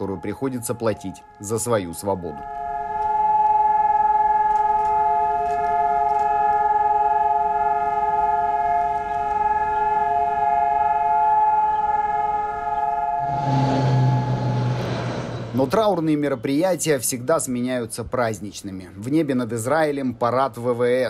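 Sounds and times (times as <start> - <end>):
steady siren chord: 0.0 - 15.8.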